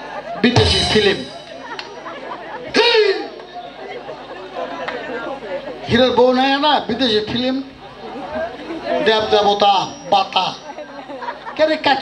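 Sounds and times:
murmur of crowd chatter: 0:00.0 - 0:12.0
man calling out loudly: 0:02.8 - 0:03.4.

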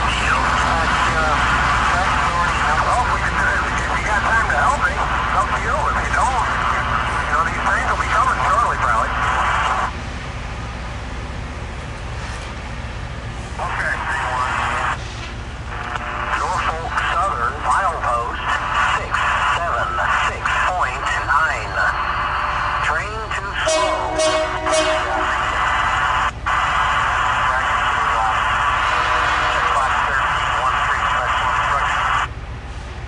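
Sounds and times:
rail grinder engine rumble: 0:00.0 - 0:33.0.

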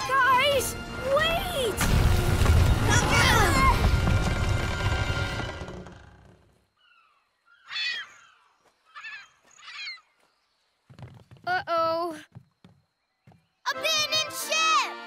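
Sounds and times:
loud cartoon crash rumbling: 0:01.8 - 0:06.0.

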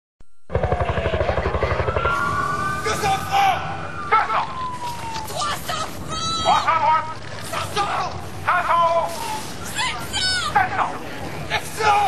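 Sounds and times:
fast low throbbing: 0:00.5 - 0:04.1
siren wails: 0:00.5 - 0:06.8
people shouting: 0:02.0 - 0:08.1, 0:09.1 - 0:10.9, 0:11.5 - 0:12.0.

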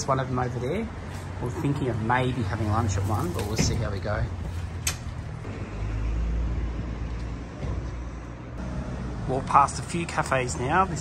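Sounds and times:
road noise: 0:00.0 - 0:11.0.

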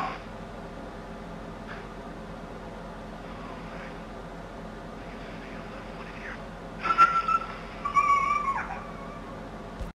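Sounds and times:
high-pitched animal-like cries: 0:06.8 - 0:09.4.

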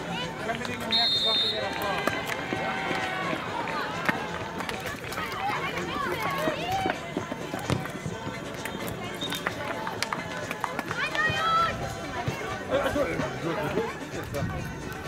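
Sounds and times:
referee's whistle: 0:00.8 - 0:01.8.

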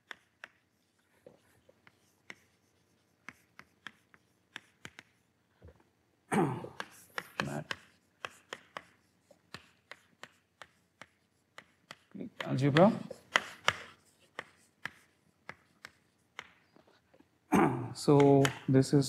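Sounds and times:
chalk tapping on blackboard: 0:00.0 - 0:05.3, 0:06.7 - 0:17.0, 0:18.1 - 0:18.8
man speaking: 0:07.4 - 0:07.7, 0:12.1 - 0:13.1, 0:17.6 - 0:19.0.

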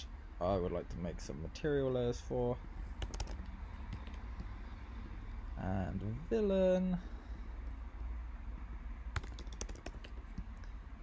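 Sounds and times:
keyboard typing: 0:03.0 - 0:04.2, 0:09.2 - 0:10.6.

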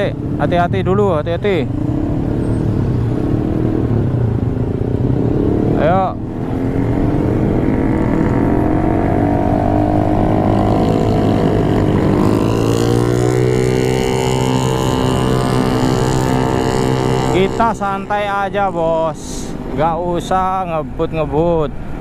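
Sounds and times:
wind and road noise: 0:00.0 - 0:22.0
motorcycle engine pulling away: 0:05.0 - 0:17.7.

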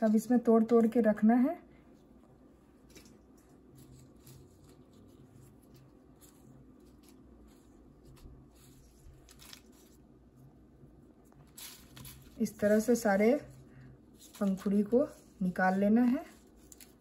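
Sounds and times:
rose petals rustling: 0:02.7 - 0:10.4, 0:11.2 - 0:17.0.

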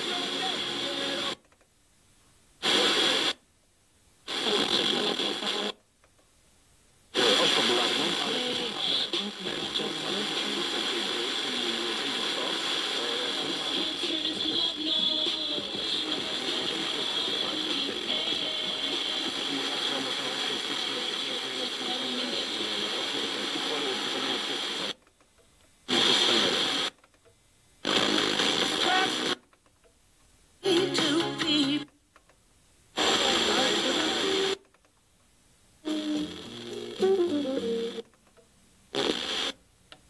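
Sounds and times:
radio hiss: 0:00.0 - 0:01.5, 0:02.6 - 0:03.4, 0:04.2 - 0:05.8, 0:07.1 - 0:25.2, 0:25.8 - 0:27.1, 0:27.8 - 0:29.6, 0:32.9 - 0:34.7, 0:35.7 - 0:38.1, 0:38.9 - 0:39.6
faint radio music: 0:00.0 - 0:40.0
faint radio speech: 0:02.6 - 0:03.4, 0:07.2 - 0:14.8, 0:15.4 - 0:25.0, 0:25.9 - 0:26.9, 0:27.9 - 0:29.4, 0:33.0 - 0:34.6.

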